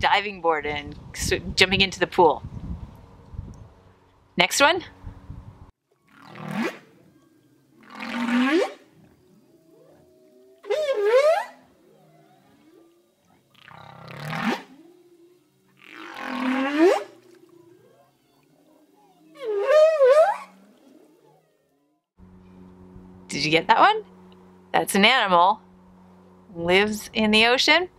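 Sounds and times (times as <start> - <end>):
whale calls: 6.0 - 22.0
faint low moans: 6.9 - 8.0, 8.8 - 15.9, 16.9 - 27.9.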